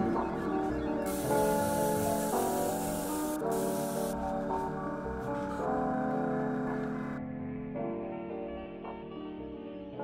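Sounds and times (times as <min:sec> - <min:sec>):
background music: 0:00.0 - 0:10.0
airbrush hissing: 0:01.1 - 0:04.3.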